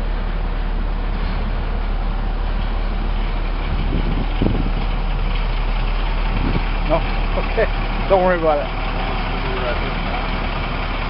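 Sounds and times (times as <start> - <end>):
truck diesel engine droning: 0.0 - 11.0.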